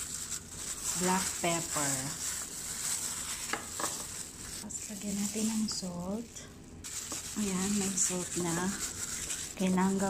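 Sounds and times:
gloved hand rubbing fish: 0.0 - 6.0, 6.8 - 10.0.

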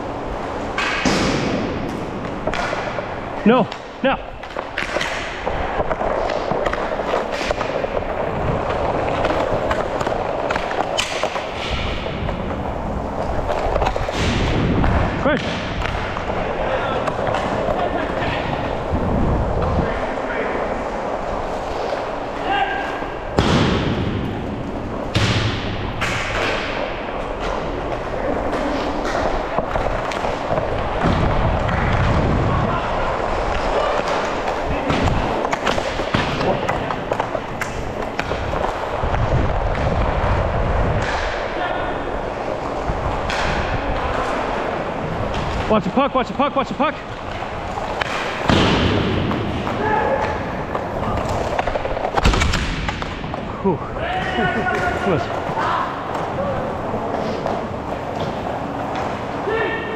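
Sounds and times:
players' voices: 0.0 - 59.9
skate wheels rolling on tiles: 4.3 - 15.1, 15.8 - 23.4, 25.8 - 41.3, 42.0 - 45.7, 47.0 - 59.5
sharp cracks: 45.3 - 53.6.

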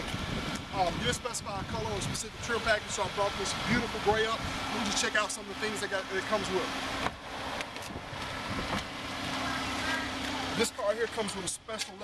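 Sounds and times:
wind on microphone: 0.0 - 2.8, 7.8 - 8.9
road traffic: 0.0 - 12.0.

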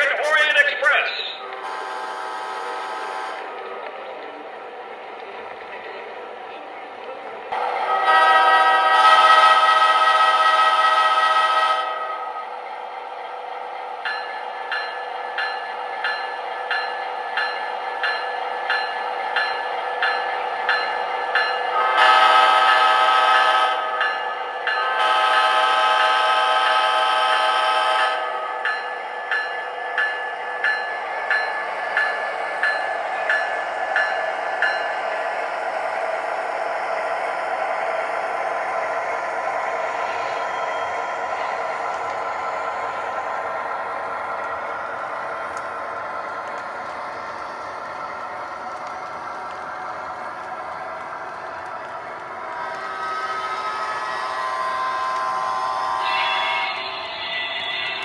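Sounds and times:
train horn blasts: 1.6 - 3.5, 7.6 - 12.1, 21.9 - 23.9, 24.9 - 28.4, 52.6 - 57.1
model train bell ringing: 14.1 - 21.8, 28.6 - 35.0.

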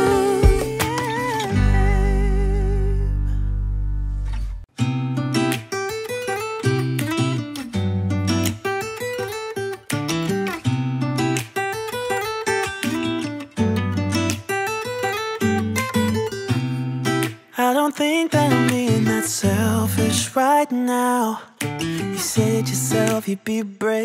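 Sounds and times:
acoustic guitar picked and strummed: 0.0 - 24.0
low bass notes: 1.6 - 4.6.

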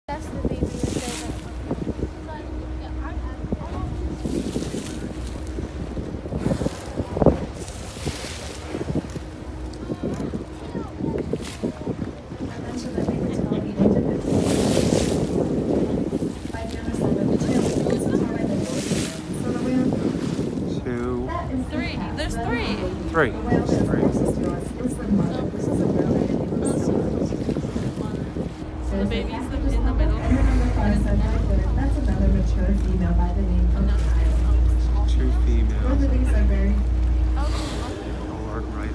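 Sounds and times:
boat engine droning: 0.1 - 38.9
people talking indistinctly: 0.1 - 38.9
wind gusting on microphone: 0.1 - 38.9.

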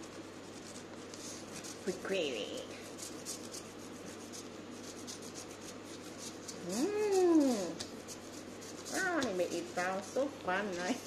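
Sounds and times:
crayon scratching on paper plate: 0.0 - 11.0.

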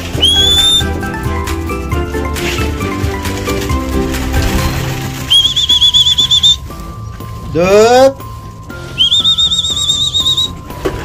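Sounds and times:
background music: 0.0 - 11.0
high warbling whistle: 0.1 - 1.0, 5.2 - 6.7, 8.9 - 10.6.

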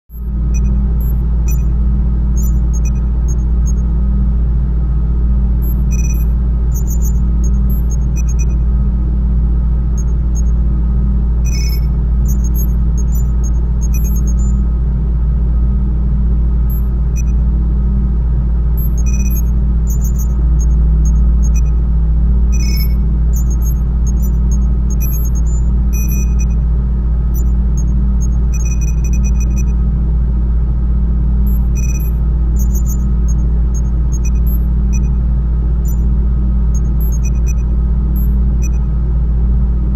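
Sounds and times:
beeping tones: 0.1 - 1.7, 2.4 - 3.4, 5.6 - 8.6, 11.5 - 14.6, 16.7 - 17.3, 18.8 - 21.7, 22.6 - 26.6, 28.6 - 29.7, 31.5 - 33.4, 34.1 - 35.1, 36.8 - 37.6, 38.2 - 38.8
low electronic drone: 0.1 - 3.9, 5.5 - 9.2, 9.8 - 14.9, 18.5 - 39.0
high electronic blips: 11.5 - 14.5.

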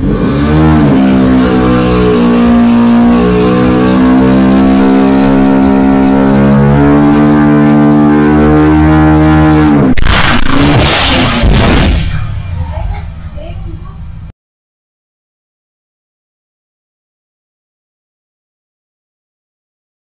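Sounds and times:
engine revving: 0.0 - 12.5.

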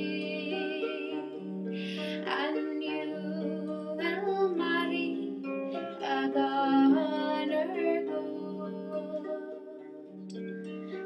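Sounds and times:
woman singing: 0.0 - 10.0
harp notes and chords: 0.0 - 11.0.

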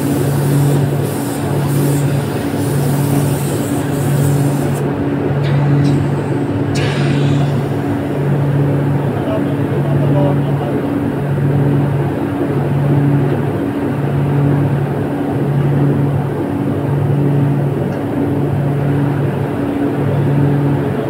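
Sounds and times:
pressing machinery running: 0.0 - 12.0.

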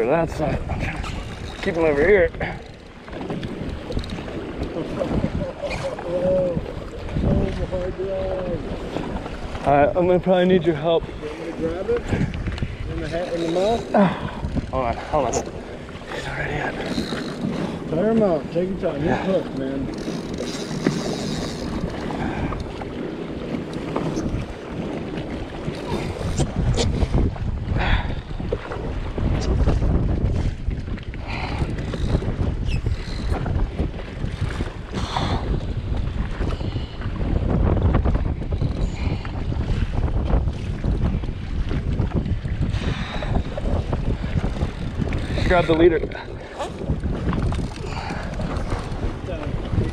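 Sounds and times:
gusty wind buffeting microphone: 0.0 - 49.9
water slapping against hull: 0.0 - 49.9.

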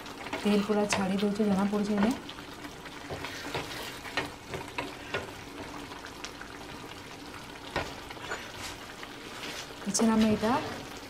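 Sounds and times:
wooden spatula stirring: 0.0 - 6.1
curry sizzling in a pan: 0.0 - 11.0.

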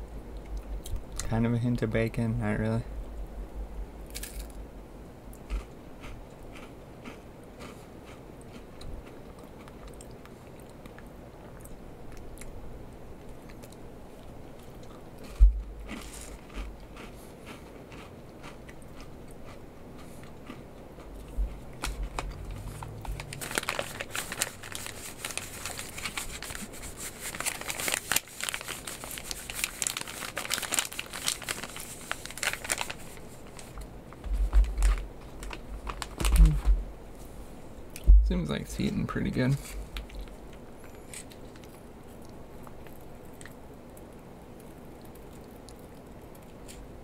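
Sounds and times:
foil pouch crinkling: 21.8 - 36.7
low thumps: 38.0 - 38.4.

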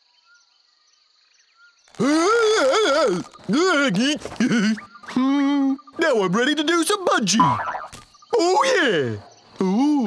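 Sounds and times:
faint high insect ticking: 0.0 - 10.0.

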